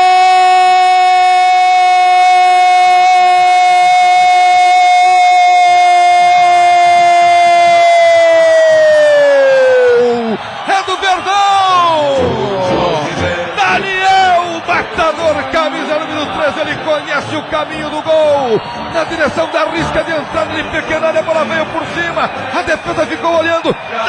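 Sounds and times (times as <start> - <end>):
commentator crying goal: 0.0 - 24.0
excited shouting: 4.8 - 24.0.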